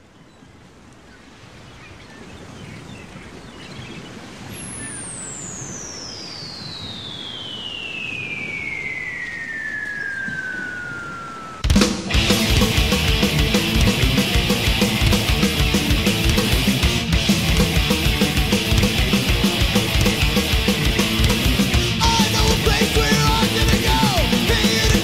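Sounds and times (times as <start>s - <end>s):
wash of noise: 4.1s - 24.9s
falling whistle: 4.6s - 12.5s, 22.0s - 25.0s
loud crack: 11.6s - 25.0s
metal band with distorted guitars: 11.6s - 25.0s.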